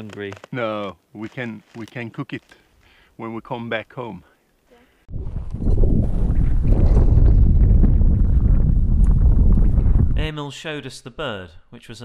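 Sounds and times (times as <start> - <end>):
wind buffeting microphone: 5.1 - 10.3.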